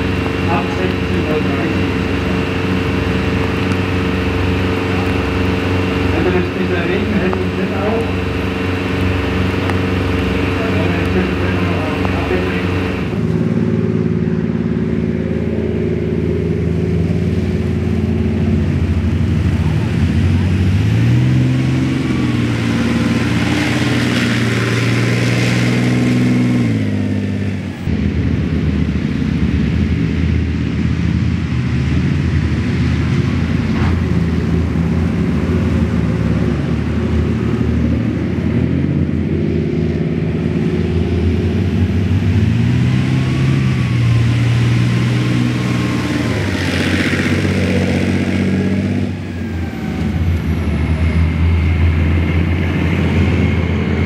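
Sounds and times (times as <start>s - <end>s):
tank diesel engine revving: 0.0s - 54.0s.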